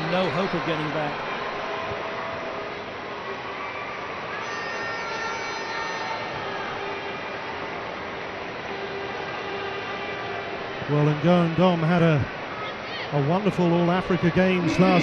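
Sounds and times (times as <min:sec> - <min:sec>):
stadium crowd noise: 0:00.0 - 0:15.0.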